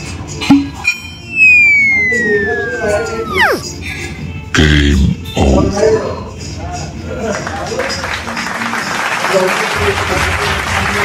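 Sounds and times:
falling whistle: 1.2 - 3.7
cartoon springy boing: 1.3 - 3.7.

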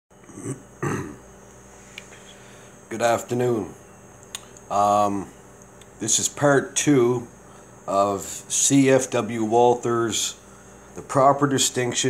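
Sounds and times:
faint room hum: 0.1 - 12.0
man clearing his throat: 0.2 - 1.2.

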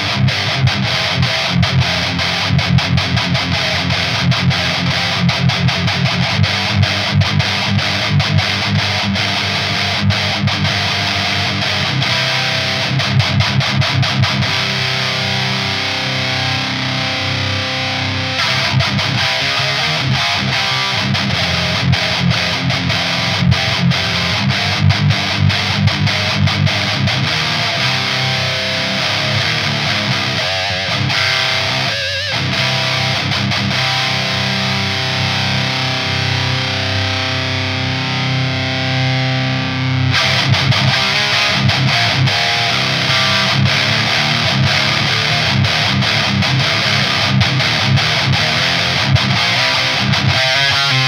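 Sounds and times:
distorted electric guitar riffing: 0.0 - 51.0.

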